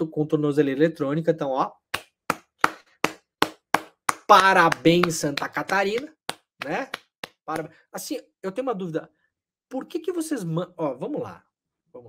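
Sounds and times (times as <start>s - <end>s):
slow hand claps: 1.9s - 7.8s.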